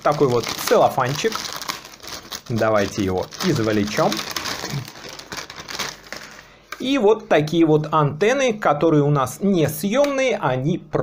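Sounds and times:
cellophane crinkling: 0.0 - 6.5.

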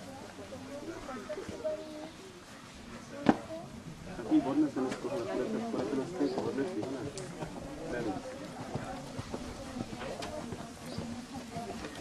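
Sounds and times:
background voices: 0.0 - 12.0
horse hoofbeats on ground: 5.8 - 12.0.

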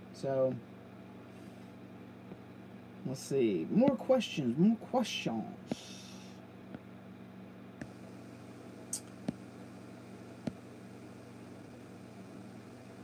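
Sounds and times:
low hum with faint hiss: 0.0 - 13.0.

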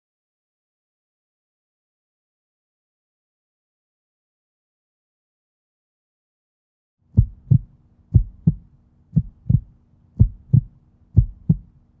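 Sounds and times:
faint low hum: 7.0 - 12.0
heartbeat thumps: 7.2 - 11.7.

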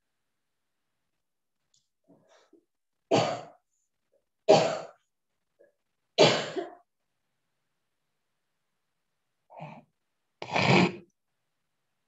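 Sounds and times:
person coughing: 6.2 - 6.8.

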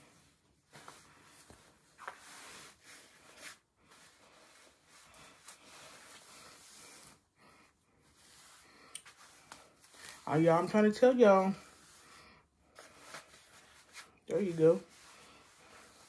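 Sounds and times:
fabric and hair rustling: 0.0 - 16.0.

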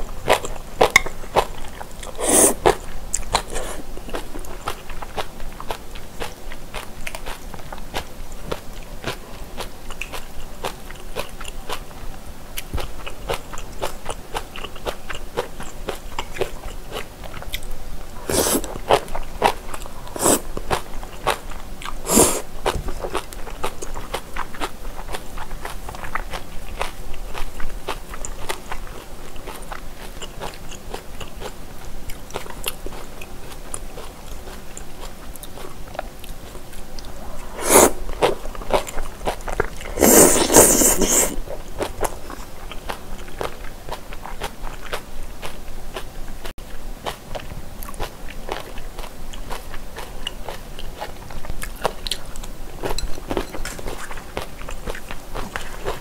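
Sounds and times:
close chewing mouth sounds: 0.0 - 56.0.

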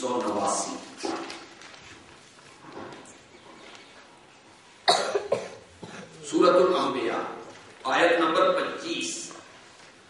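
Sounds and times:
person coughing: 4.8 - 6.2.

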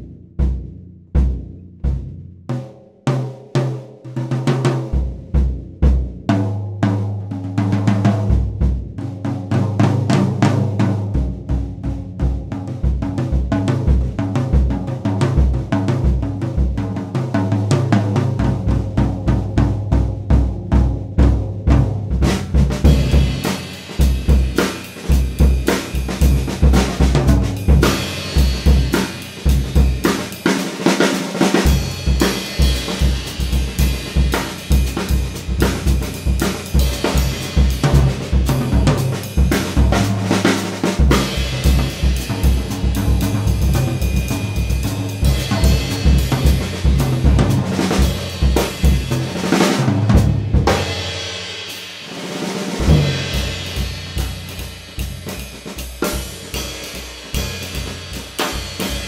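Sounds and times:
bass drum beats: 0.0 - 2.6, 4.8 - 51.3, 52.7 - 59.0
snare and tom strokes: 21.3 - 59.0
cymbals crashing: 27.6 - 30.7, 41.2 - 46.9.

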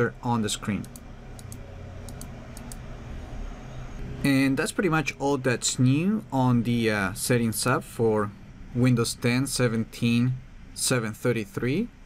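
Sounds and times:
low steady hum: 0.0 - 12.0
computer mouse clicking: 0.8 - 2.9.

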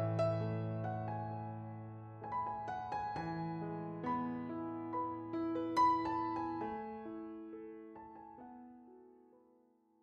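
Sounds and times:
soft piano notes: 0.0 - 9.2.

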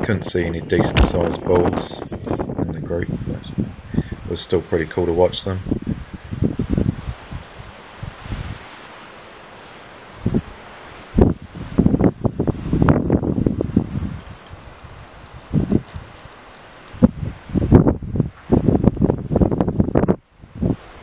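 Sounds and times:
wind buffeting microphone: 0.0 - 8.8, 10.1 - 21.0
steady wind hiss: 0.0 - 21.0.

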